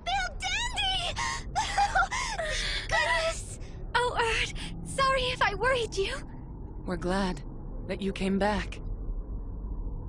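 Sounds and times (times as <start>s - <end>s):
woman gasping and crying: 1.1s - 2.9s.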